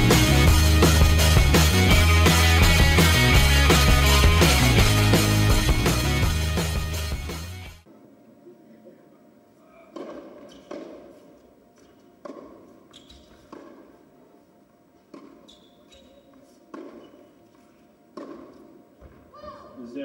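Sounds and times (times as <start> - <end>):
tennis ball struck by rackets: 9.9 - 11.2, 12.2 - 13.9, 15.1 - 15.4, 16.7 - 17.3, 18.1 - 19.2
tennis ball bouncing on hard court: 9.9 - 14.0, 15.1 - 19.3.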